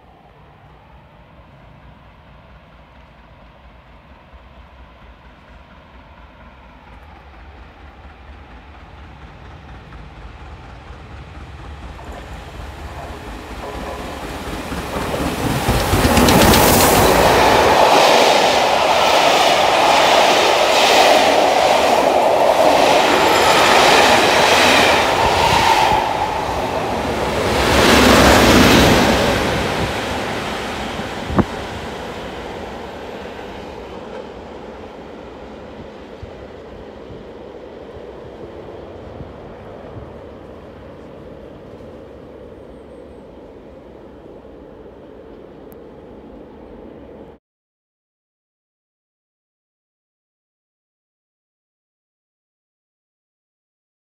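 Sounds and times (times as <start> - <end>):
steam train rattling past: 0.0 - 47.4
sharp click: 16.0 - 17.0.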